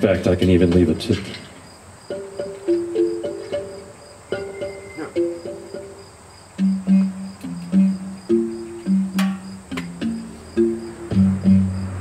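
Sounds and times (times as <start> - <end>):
crickets chirping: 0.0 - 12.0
instrumental melody of short notes: 2.1 - 12.0.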